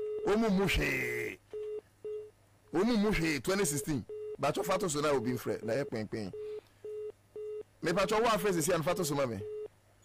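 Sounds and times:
person speaking: 0.2s - 1.4s, 2.7s - 6.4s, 7.8s - 9.5s
telephone line beeps: 3.7s - 7.7s, 9.4s - 9.7s.

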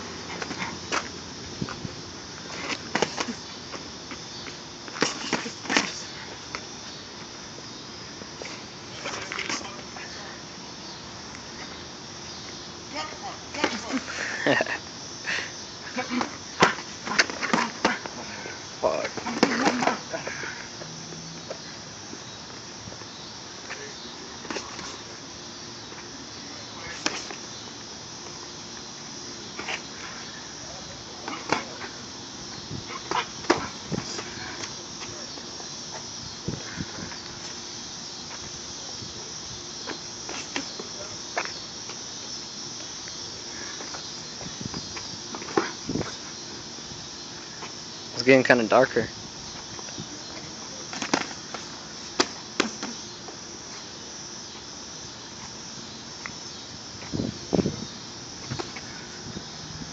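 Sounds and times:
crickets chirping: 0.0s - 59.9s.

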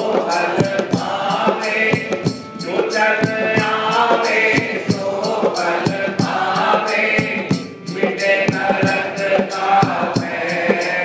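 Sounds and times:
harmonium: 0.0s - 11.0s
man singing devotional song: 0.0s - 11.0s
percussion beat of sharp strikes: 0.0s - 11.0s.

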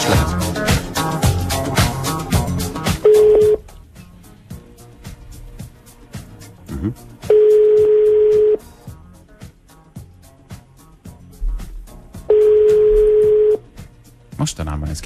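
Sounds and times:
background music with steady beat: 0.0s - 15.0s
telephone ringback tone: 3.0s - 3.6s, 7.2s - 8.7s, 12.3s - 13.7s.

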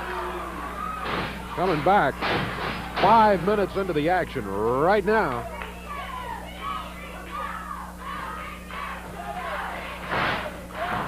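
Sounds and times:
crowd shouting: 0.0s - 2.1s, 5.4s - 11.0s.

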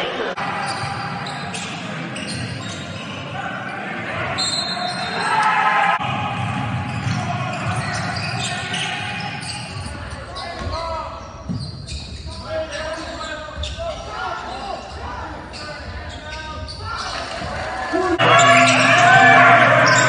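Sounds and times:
sneakers squeaking: 0.5s - 5.5s, 6.6s - 20.0s
people calling out: 17.0s - 20.0s.

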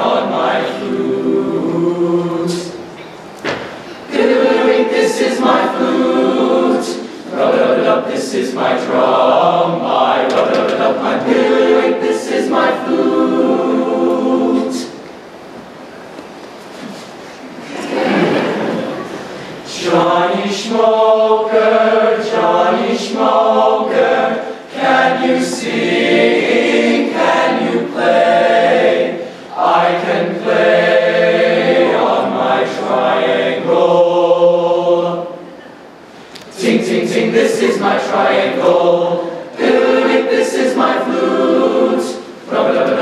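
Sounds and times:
male choir singing a cappella: 0.0s - 2.9s, 4.0s - 15.0s, 17.8s - 35.5s, 36.5s - 43.0s.

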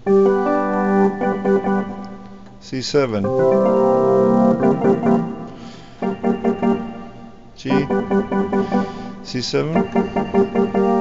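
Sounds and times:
synthesizer chords: 0.0s - 2.2s, 3.2s - 11.0s.

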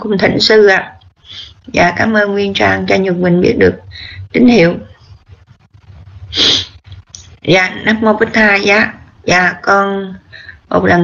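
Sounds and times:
faint low hum: 0.0s - 11.0s
breath burst into microphone: 3.9s - 4.3s, 10.3s - 10.7s.

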